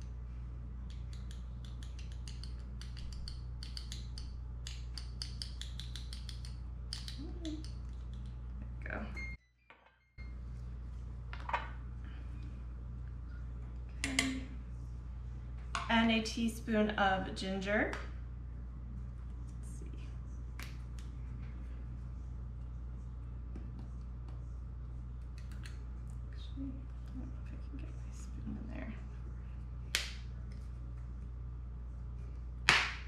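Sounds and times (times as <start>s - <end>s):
steady low hum: 0.0s - 9.4s, 10.2s - 33.0s.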